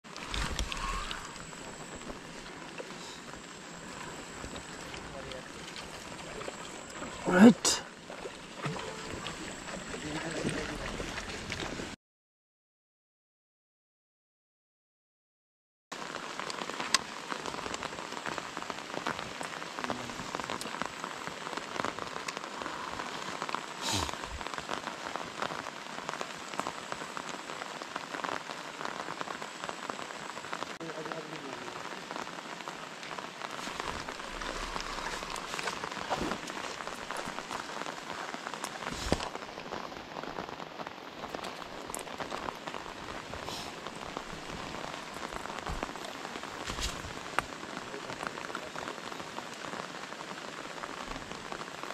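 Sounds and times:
rain on water and leaves: 0.0s - 12.0s, 15.9s - 51.9s.

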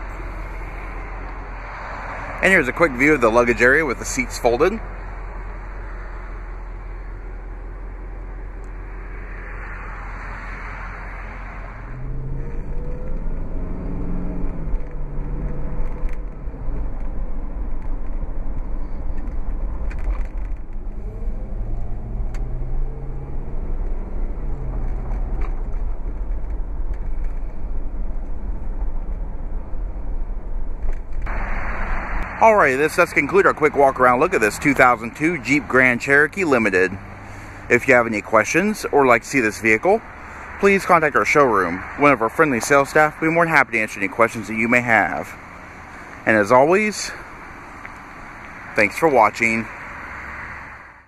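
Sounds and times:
car engine accelerating: 0.0s - 51.0s
road rumble: 0.0s - 51.0s.

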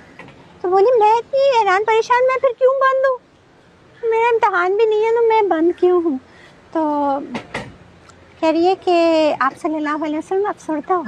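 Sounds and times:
woman speaking: 0.6s - 3.2s, 4.0s - 7.4s, 8.4s - 11.0s.

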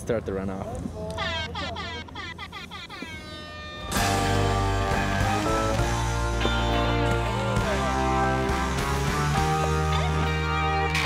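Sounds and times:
falling electronic chirps: 1.2s - 8.1s
loud music: 3.9s - 11.0s.

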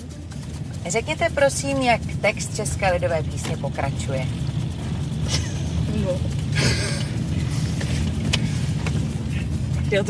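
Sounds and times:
car interior rumble while driving: 0.0s - 10.0s.

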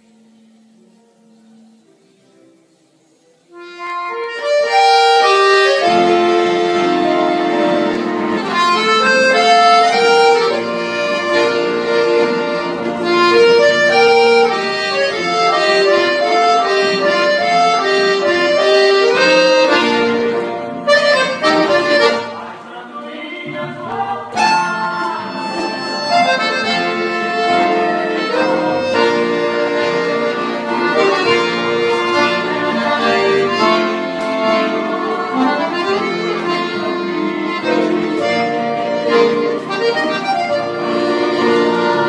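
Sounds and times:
piano accordion: 0.0s - 42.0s.

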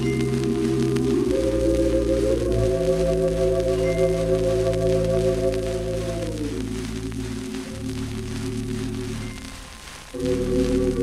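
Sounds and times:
record surface hiss and crackle: 0.0s - 11.0s.

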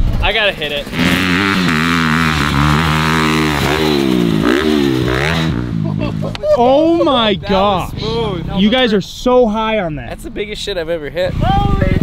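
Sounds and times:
dirt bike engine revving: 0.0s - 9.9s.

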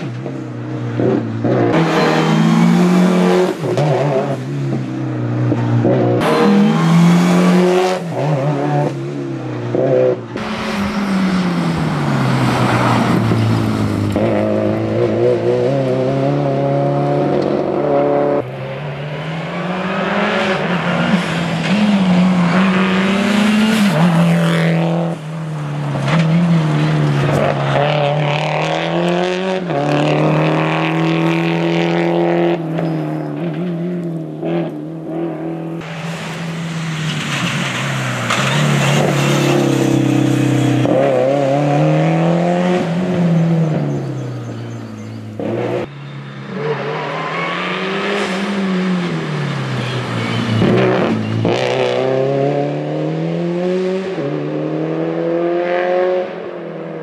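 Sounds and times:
rally car engine revving: 0.0s - 57.0s.

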